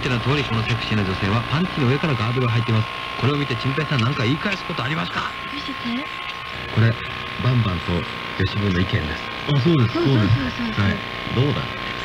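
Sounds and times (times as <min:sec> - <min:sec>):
radio crackle: 0:00.0 - 0:12.0
voices talking on radio: 0:00.0 - 0:12.0.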